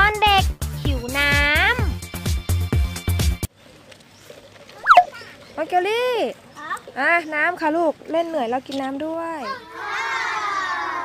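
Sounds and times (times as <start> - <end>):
high-pitched voice calling out: 4.8 - 5.3.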